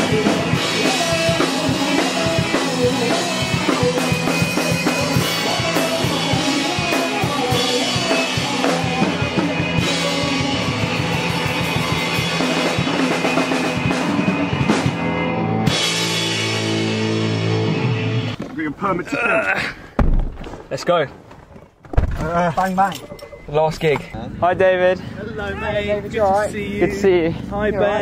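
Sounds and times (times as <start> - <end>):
male lead singer: 0.0 - 12.1
electric guitars: 0.0 - 18.4.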